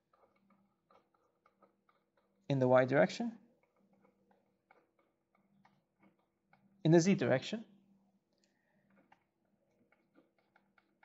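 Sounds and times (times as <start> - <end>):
marker ticking on paper: 0.0 - 7.2, 8.4 - 11.0.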